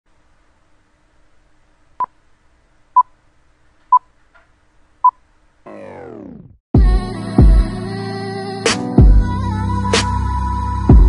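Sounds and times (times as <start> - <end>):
falling synthesized tone sweep: 5.7 - 6.6.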